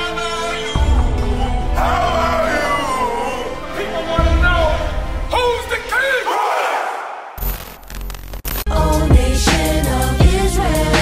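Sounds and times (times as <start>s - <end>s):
men shouting together: 1.4s - 7.4s
music with bass: 8.2s - 11.0s.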